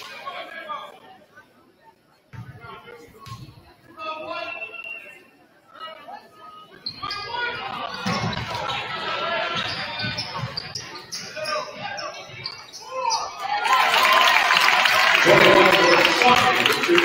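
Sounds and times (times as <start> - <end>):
sneakers squeaking: 6.6 - 13.6
crowd voices echoing: 7.1 - 17.0.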